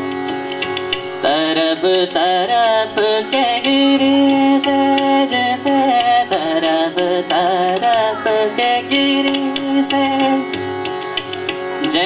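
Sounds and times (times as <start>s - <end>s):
harmonium: 0.0s - 12.0s
tabla: 0.0s - 12.0s
boy singing into a microphone: 1.2s - 10.6s, 11.7s - 12.0s.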